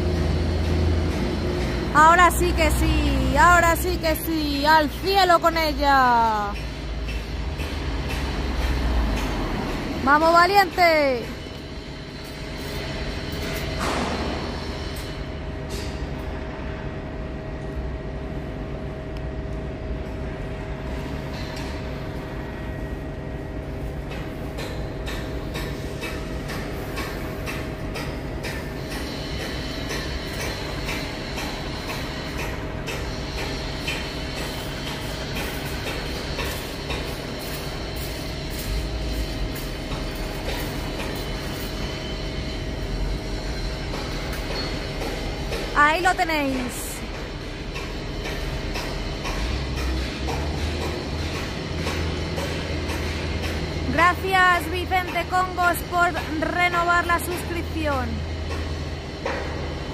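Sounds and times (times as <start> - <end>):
lifting machinery humming: 0.0 - 59.9.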